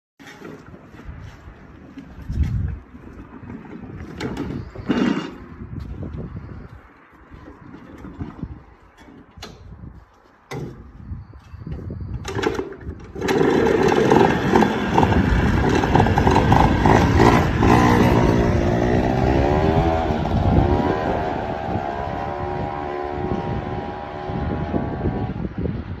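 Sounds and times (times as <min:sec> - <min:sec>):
small petrol engine revving: 0:12.2 - 0:25.6.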